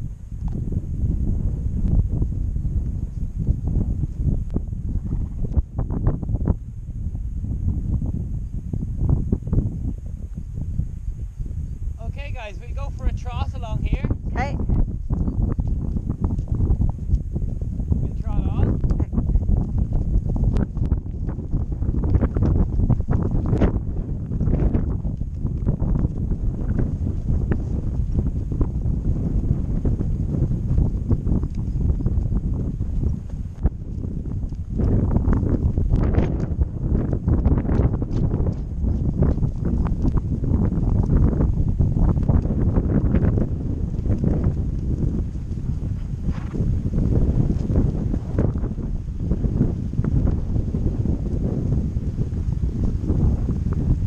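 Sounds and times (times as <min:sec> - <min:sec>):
horse hoofbeats on grass: 0:00.0 - 0:54.0
wind buffeting microphone: 0:00.0 - 0:54.0.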